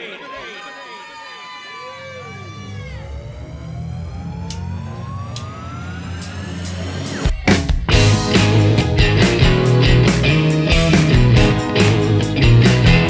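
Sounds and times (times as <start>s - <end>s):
electric guitar pitch glides: 1.8s - 7.3s
low bass drone: 1.8s - 13.0s.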